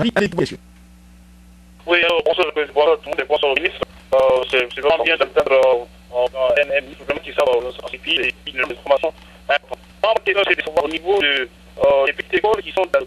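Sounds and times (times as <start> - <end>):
person talking over telephone: 1.8 - 13.0.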